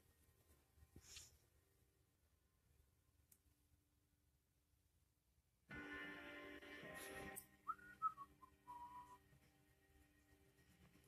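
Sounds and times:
faint whistling: 7.6 - 9.4.

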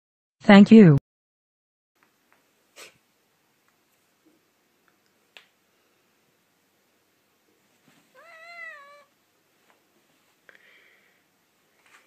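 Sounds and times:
cat meowing: 8.1 - 9.1.

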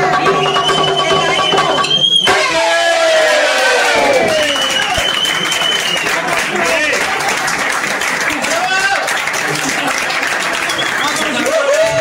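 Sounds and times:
people clapping: 0.0 - 12.0
audience cheering and whooping: 2.3 - 7.6, 8.4 - 12.0.

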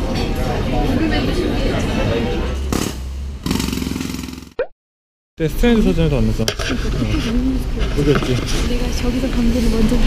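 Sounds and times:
jackhammer clatter: 2.7 - 4.6.

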